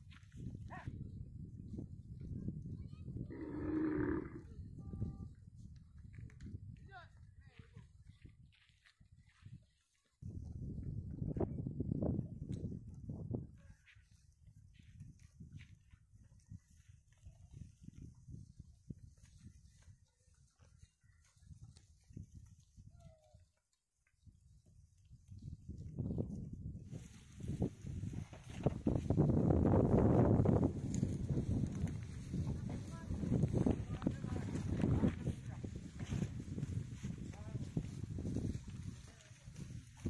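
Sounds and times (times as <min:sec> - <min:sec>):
wind gusts on microphone: 0:00.0 - 0:20.0, 0:24.2 - 0:40.0
cattle walking and grazing: 0:00.0 - 0:40.0.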